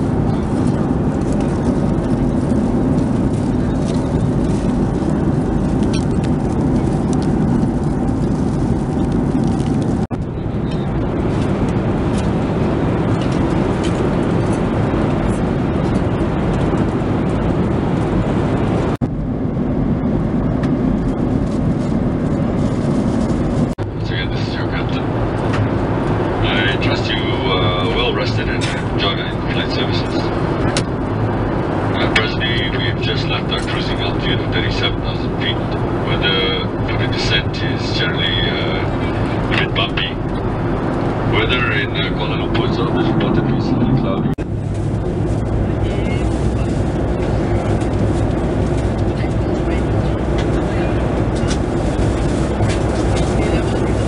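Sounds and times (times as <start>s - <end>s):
airplane cabin engine drone: 0.0s - 54.0s
voices: 24.0s - 40.5s, 41.1s - 44.4s, 45.7s - 54.0s.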